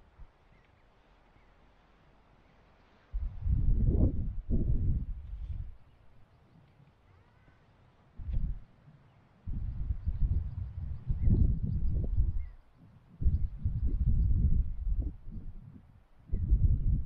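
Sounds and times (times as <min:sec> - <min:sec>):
wind buffeting microphone: 0:03.1 - 0:06.0, 0:08.2 - 0:08.7, 0:09.4 - 0:17.0.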